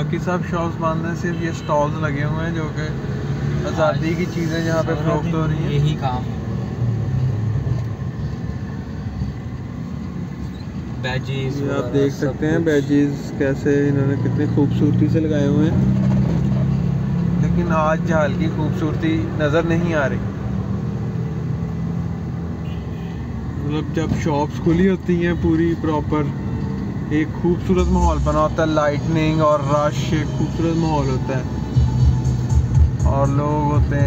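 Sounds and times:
street traffic noise: 0.0s - 34.0s
car engine hum from inside: 2.1s - 34.0s.

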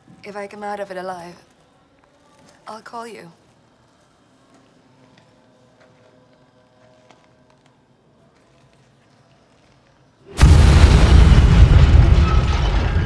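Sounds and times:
loud rumbling explosion: 10.4s - 13.0s.

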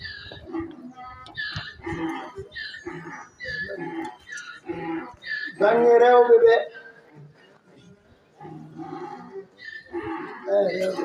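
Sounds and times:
man reciting through microphone: 3.4s - 7.1s, 10.4s - 11.0s.

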